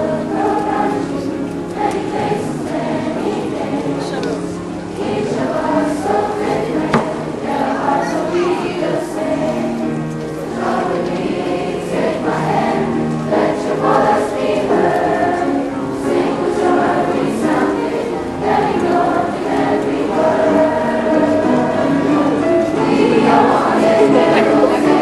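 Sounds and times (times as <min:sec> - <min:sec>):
children's chorus singing: 0:00.0 - 0:25.0.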